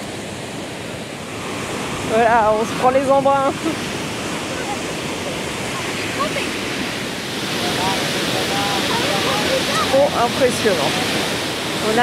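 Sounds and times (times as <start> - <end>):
water jet rushing: 0.0 - 12.0.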